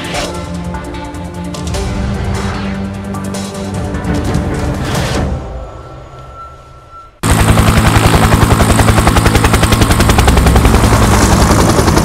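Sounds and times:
helicopter rotor chopping: 7.2 - 12.0.

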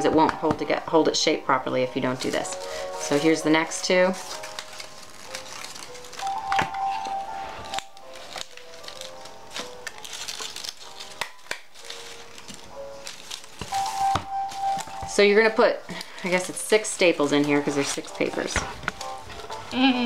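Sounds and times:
soft background music: 0.0 - 20.0
paper rustling and crinkling: 2.1 - 19.9.

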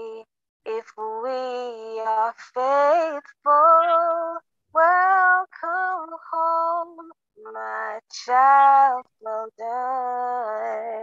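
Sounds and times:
woman singing hymn unaccompanied: 0.0 - 11.0.

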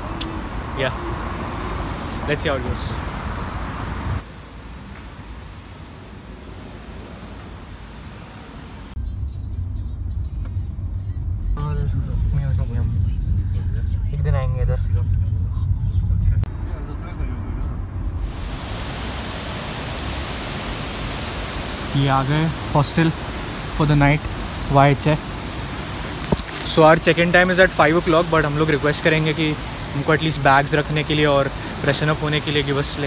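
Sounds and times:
street traffic: 0.0 - 33.0
car road rumble from inside: 8.6 - 19.0
steady rushing hiss: 18.2 - 33.0.

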